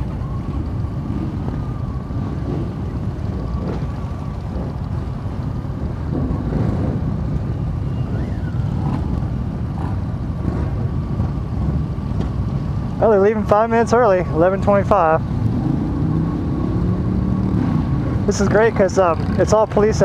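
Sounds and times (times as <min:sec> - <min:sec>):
motorcycles idling: 0:00.0 - 0:15.4.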